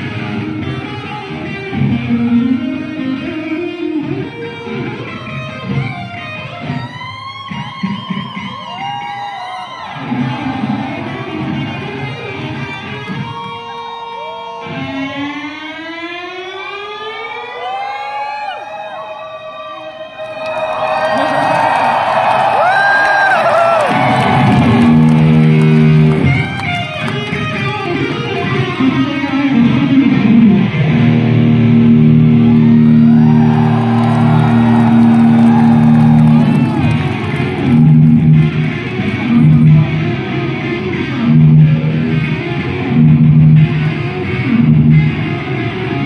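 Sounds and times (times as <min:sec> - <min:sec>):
electric guitar: 0:00.0 - 0:46.0.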